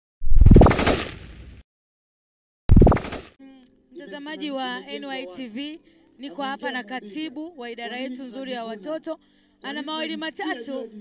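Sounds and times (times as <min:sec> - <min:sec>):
rapid rattling hits with rising tone: 0:02.7 - 0:03.3.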